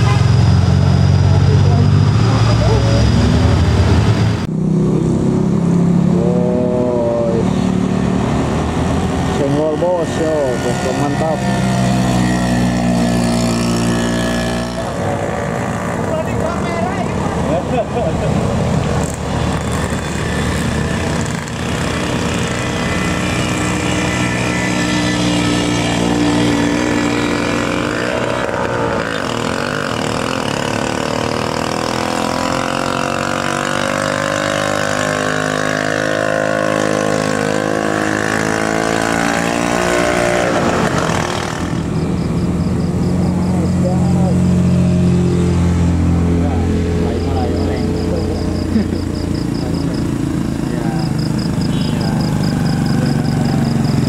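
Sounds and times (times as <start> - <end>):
scooter engines pulling uphill: 0.0 - 54.0.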